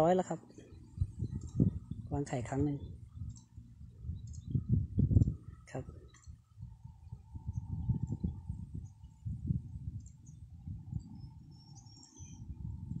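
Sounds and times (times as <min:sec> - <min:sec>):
faint steady hum: 0:00.0 - 0:13.0
wind buffeting microphone: 0:00.0 - 0:13.0.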